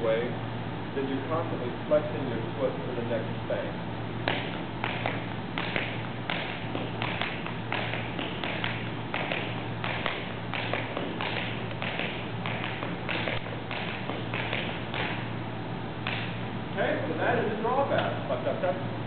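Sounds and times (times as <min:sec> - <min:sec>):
tap shoes striking floor: 0:04.2 - 0:15.2, 0:16.0 - 0:16.3.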